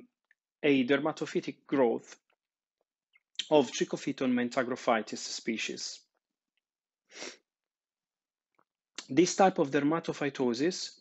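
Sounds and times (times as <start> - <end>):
sharp breath: 7.1 - 7.4.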